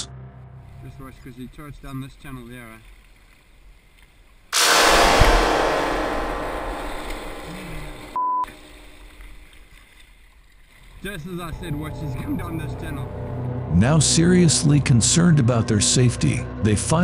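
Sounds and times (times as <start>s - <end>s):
thud: 4.6s - 8.7s
loud water splash: 4.6s - 9.5s
censor bleep: 7.5s - 8.6s.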